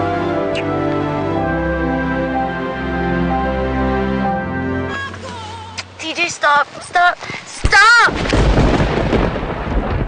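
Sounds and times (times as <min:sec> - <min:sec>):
heavy rain: 0:06.7 - 0:10.0
thunder rumble: 0:07.6 - 0:10.0.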